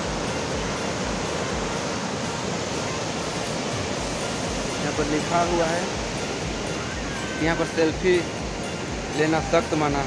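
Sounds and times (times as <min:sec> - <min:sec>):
water rushing over boulders: 0:00.0 - 0:10.0.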